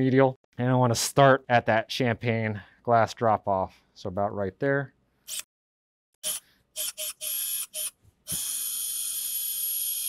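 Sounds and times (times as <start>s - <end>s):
power driver drilling whine: 6.2s - 10.0s.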